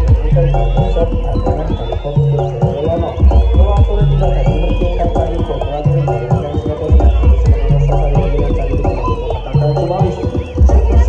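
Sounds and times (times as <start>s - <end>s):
high wavering melodic line: 0.0s - 11.0s.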